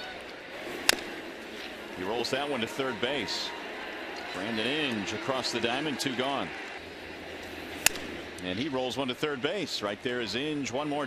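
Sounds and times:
crowd murmur: 0.0s - 10.8s
bat cracking on ball: 0.8s - 1.2s, 7.8s - 8.2s.

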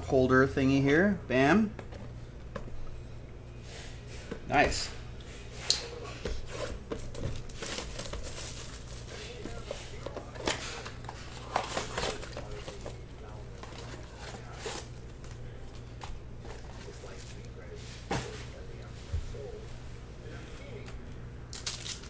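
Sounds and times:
steady low hum: 0.0s - 22.0s
plastic wrap crinkling: 7.0s - 15.6s.

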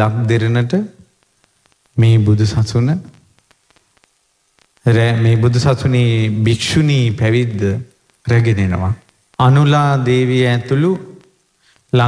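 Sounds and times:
man chanting: 4.9s - 11.2s.

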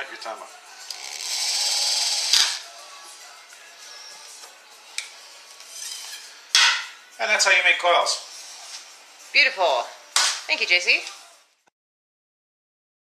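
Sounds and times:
cordless drill spinning: 0.8s - 2.7s.

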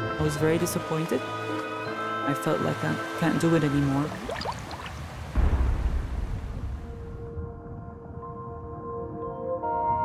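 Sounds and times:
deep boom impact: 5.4s - 7.4s.

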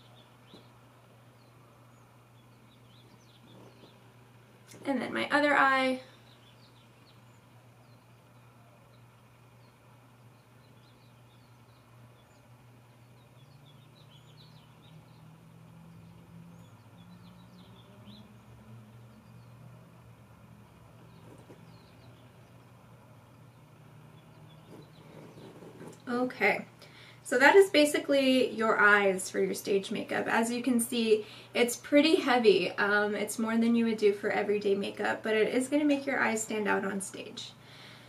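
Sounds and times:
faint bird chirps: 0.0s - 5.2s, 5.9s - 20.0s, 20.9s - 26.1s
low steady hum: 0.0s - 38.0s.

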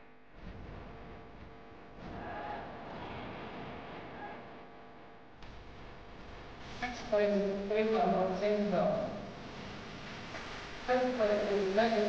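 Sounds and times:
murmur of gym hall: 0.1s - 12.0s.

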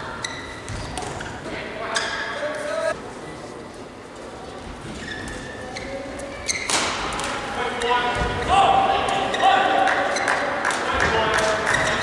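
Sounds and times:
shoes squeaking on court: 0.1s - 1.3s, 4.8s - 7.0s, 11.6s - 12.0s.

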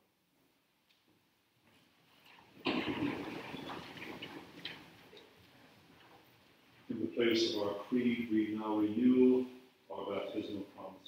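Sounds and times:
man speaking: 6.9s - 11.0s.

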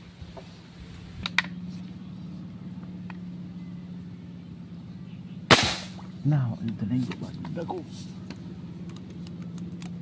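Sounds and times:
steady low hum: 0.0s - 10.0s
airgun shot: 5.5s - 6.1s.

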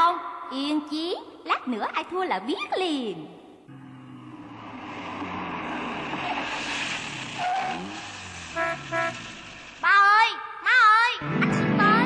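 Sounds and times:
car engine: 3.7s - 9.8s
car horn honks: 8.5s - 9.4s.

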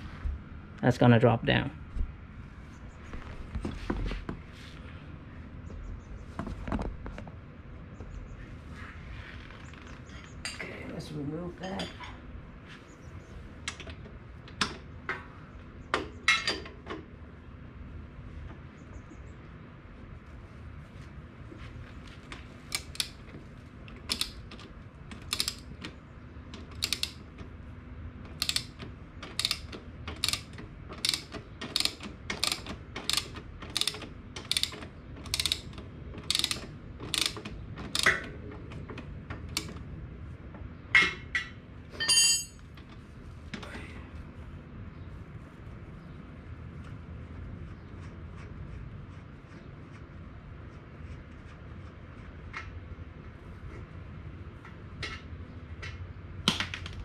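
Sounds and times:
socket ratchet clicking: 22.7s - 23.2s, 23.9s - 25.8s, 26.6s - 27.2s, 28.3s - 38.2s.

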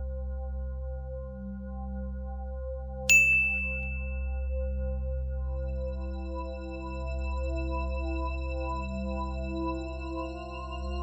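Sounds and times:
bright bell ding: 3.1s - 4.4s.

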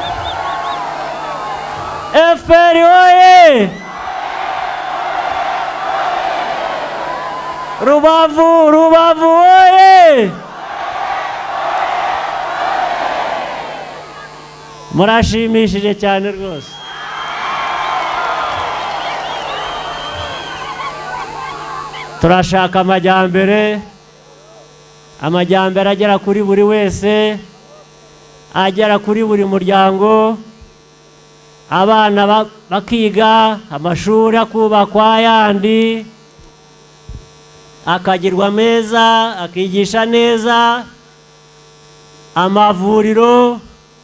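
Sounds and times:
high wavering calls: 0.0s - 2.1s, 16.6s - 22.2s
crowd cheering and shouting: 0.0s - 8.3s, 9.4s - 15.2s, 16.5s - 22.4s
electrical mains hum: 0.0s - 44.0s.

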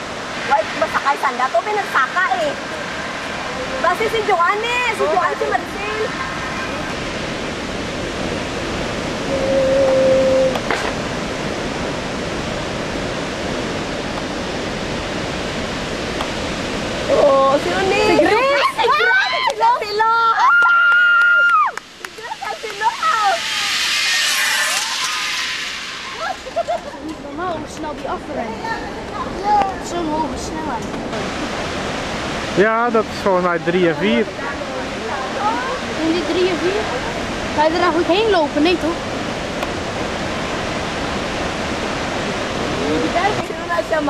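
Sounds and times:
waterfall rushing: 0.0s - 44.0s
voices: 0.3s - 7.1s, 9.2s - 10.8s, 17.0s - 31.6s, 32.6s - 39.2s, 42.4s - 44.0s
zipline pulley hissing on cable: 21.6s - 27.4s.

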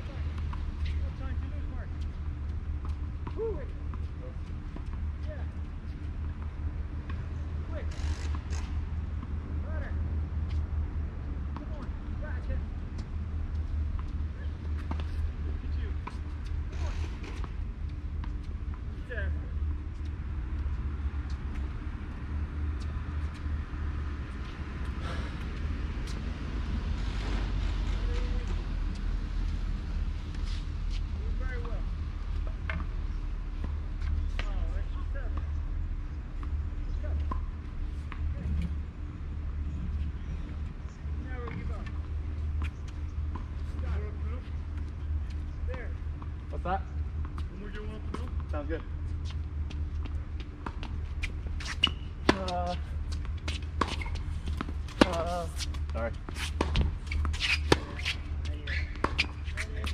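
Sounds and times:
steady low rumble: 0.0s - 59.9s.

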